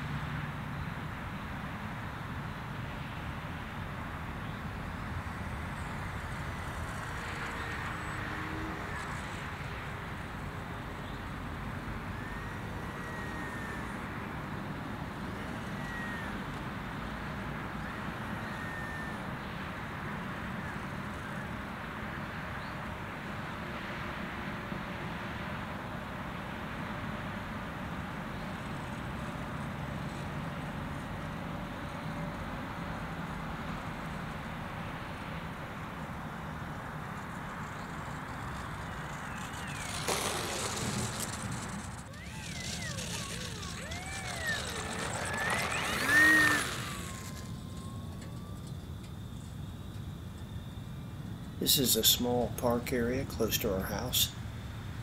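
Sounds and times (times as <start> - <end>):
outdoor background noise: 0.0 - 55.0
small electric plane motor whine: 5.1 - 19.5, 37.1 - 49.6.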